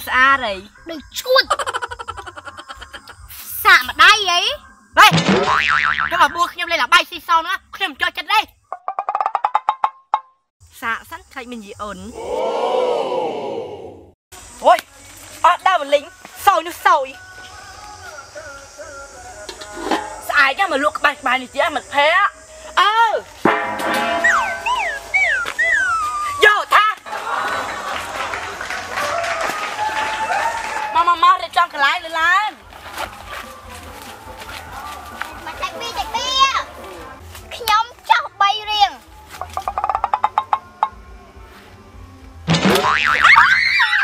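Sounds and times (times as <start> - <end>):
young girls' playful voices: 24.3 - 27.0, 35.1 - 39.1.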